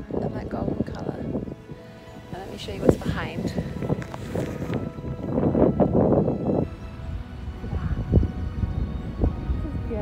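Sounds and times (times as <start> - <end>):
faint background music: 0.0 - 10.0
wind buffeting microphone: 0.0 - 10.0.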